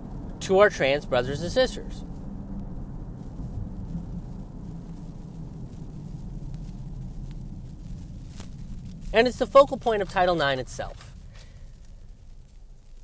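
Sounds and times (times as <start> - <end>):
car road and engine rumble: 0.0 - 13.0
faint ticks: 2.0 - 9.2, 10.8 - 13.0.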